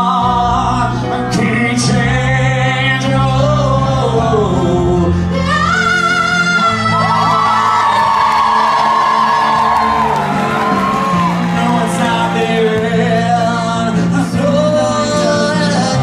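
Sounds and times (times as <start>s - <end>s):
pop backing track: 0.0s - 16.0s
audience whooping: 6.9s - 13.6s.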